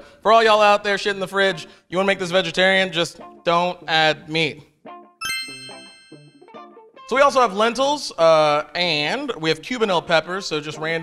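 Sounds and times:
bell-like ding: 0:05.2 - 0:06.5
soft background music: 0:05.2 - 0:11.0.

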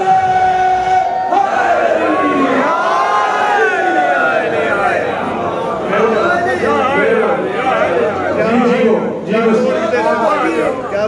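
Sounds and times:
crowd of men cheering and shouting: 0:00.0 - 0:11.0.

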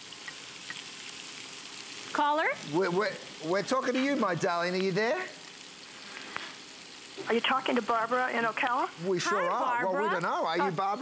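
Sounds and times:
shrimp sizzling in a pan: 0:00.0 - 0:11.0.

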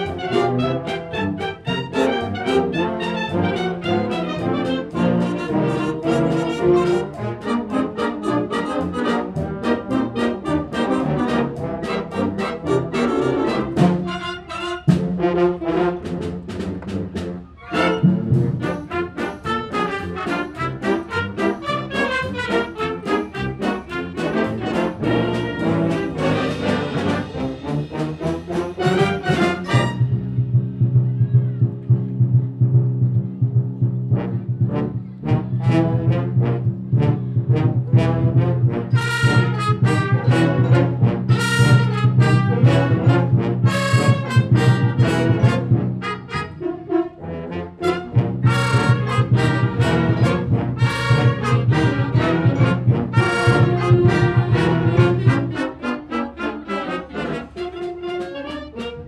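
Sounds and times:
concert band playing: 0:00.0 - 0:46.6, 0:47.8 - 0:56.2
low brass chord: 0:17.7 - 0:30.6.

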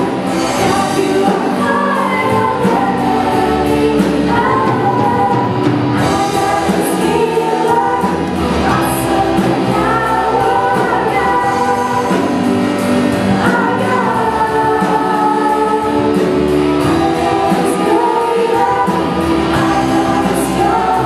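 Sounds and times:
choir singing: 0:00.0 - 0:21.0
musical accompaniment: 0:00.0 - 0:21.0.

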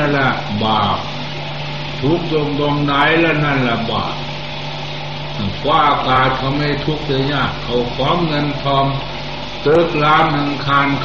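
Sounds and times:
man speaking: 0:00.0 - 0:01.1, 0:02.0 - 0:04.2, 0:05.4 - 0:11.0
low hum with hiss: 0:00.0 - 0:11.0.

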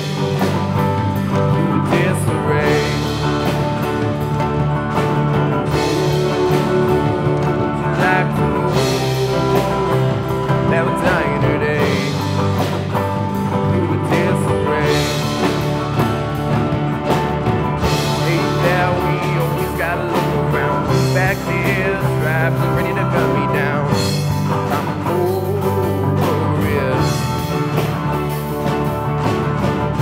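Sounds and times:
bass guitar: 0:00.0 - 0:30.0
drum kit played with rod sticks: 0:00.0 - 0:30.0
electric guitar: 0:00.0 - 0:30.0.

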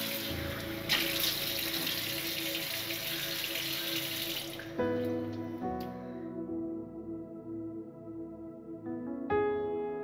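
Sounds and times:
tap running into a washbasin: 0:00.0 - 0:05.1
soft background music: 0:00.0 - 0:10.0.

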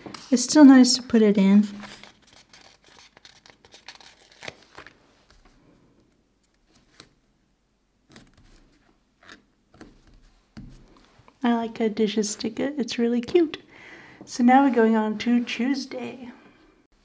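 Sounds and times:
paper sticker rustling: 0:01.6 - 0:05.6.

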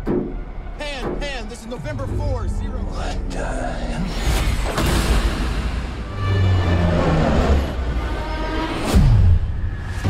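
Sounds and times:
deep held low notes: 0:00.0 - 0:04.6.

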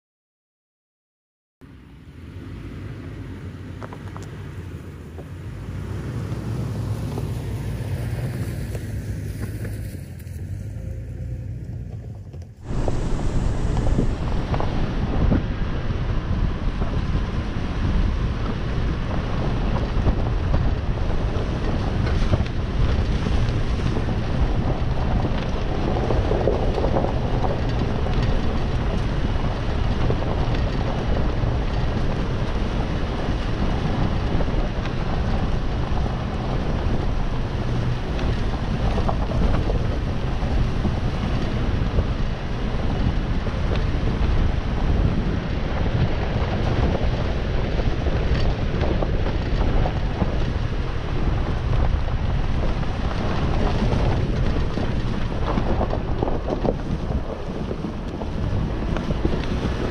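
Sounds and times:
truck engine at low speed: 0:01.6 - 0:59.9
tyres on dirt track: 0:01.6 - 0:59.9
wind on microphone: 0:01.7 - 0:59.9.

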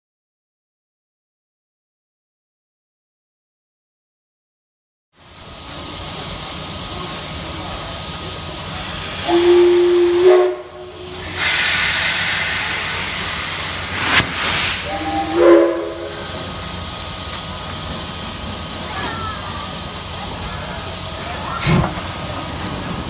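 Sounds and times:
rush of escaping steam: 0:05.2 - 0:23.0
steam hissing: 0:05.2 - 0:23.0
steam whistle blasts: 0:09.2 - 0:13.6, 0:14.5 - 0:16.6.

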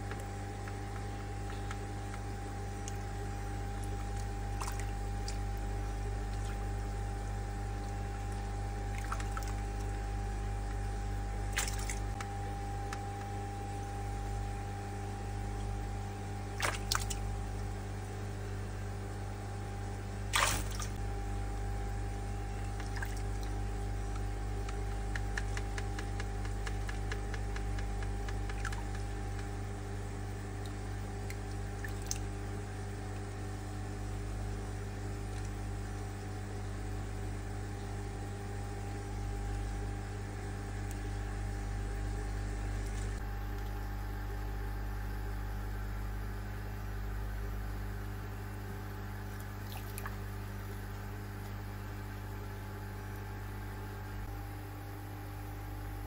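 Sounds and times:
small water drips and clicks: 0:00.0 - 0:13.4, 0:16.6 - 0:17.8, 0:20.3 - 0:21.0, 0:22.4 - 0:29.6, 0:30.6 - 0:32.4, 0:34.4 - 0:36.2, 0:39.3 - 0:39.8, 0:40.7 - 0:41.3, 0:42.2 - 0:44.0, 0:48.8 - 0:51.8
steady low hum: 0:00.0 - 0:56.0
water splash: 0:04.2 - 0:05.4, 0:08.9 - 0:09.9, 0:11.5 - 0:12.2, 0:16.6 - 0:17.3, 0:20.3 - 0:21.0, 0:22.7 - 0:23.5, 0:31.8 - 0:32.2, 0:49.6 - 0:50.2.

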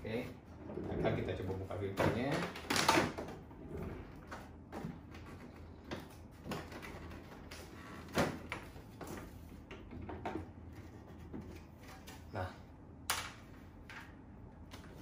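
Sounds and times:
plastic cover clicks and knocks: 0:02.0 - 0:03.3.

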